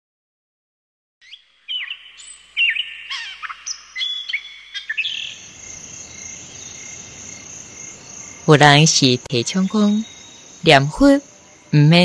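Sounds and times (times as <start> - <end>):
small birds chirping: 1.2 - 12.0.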